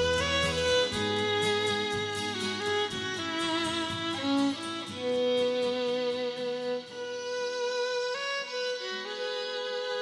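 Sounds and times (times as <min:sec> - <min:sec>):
country band backing: 0:00.0 - 0:06.6
fiddle playing long notes: 0:00.0 - 0:10.0.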